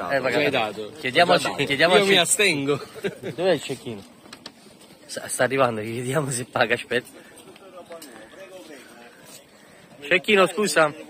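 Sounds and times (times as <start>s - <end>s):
faint background voices: 0.0s - 11.0s.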